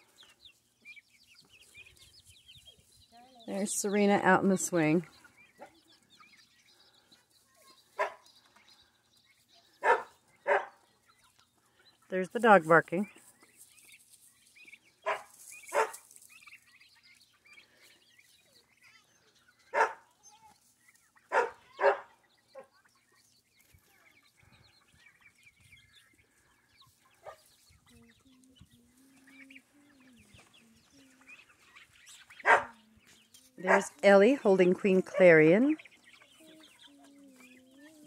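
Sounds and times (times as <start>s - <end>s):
chickens clucking: 0.0s - 38.0s.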